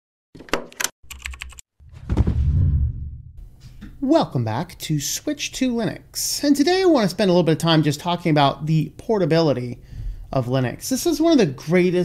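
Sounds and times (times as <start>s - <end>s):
sharp keyboard-like clicks: 0.5s - 1.6s
deep full sound effect: 1.8s - 3.4s.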